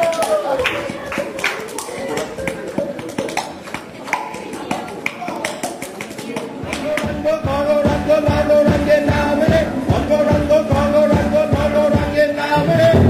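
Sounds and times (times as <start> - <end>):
crowd clapping in rhythm: 0.0 - 12.3
voices: 0.0 - 13.0
band playing: 6.6 - 13.0.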